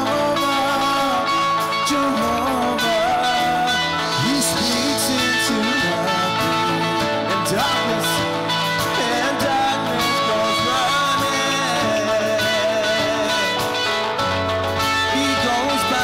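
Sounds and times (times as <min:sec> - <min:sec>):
electric guitar: 0:00.0 - 0:16.0
keyboard chords: 0:00.0 - 0:16.0
drums and cymbals: 0:00.3 - 0:16.0.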